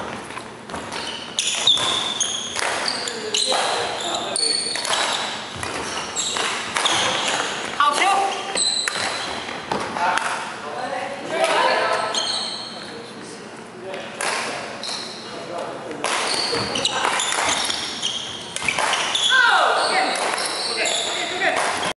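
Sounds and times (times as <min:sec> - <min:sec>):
sneakers squeaking: 0:00.0 - 0:10.1, 0:11.6 - 0:13.2, 0:14.5 - 0:22.0
racket striking shuttlecock: 0:00.8 - 0:02.9, 0:18.6 - 0:19.1.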